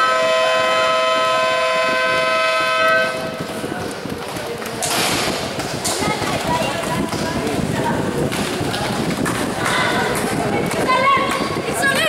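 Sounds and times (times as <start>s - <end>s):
scoreboard buzzer horn: 0.0s - 3.3s.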